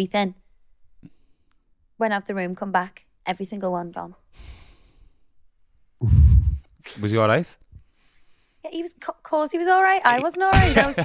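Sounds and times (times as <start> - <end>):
person sighing: 6.0 - 6.6.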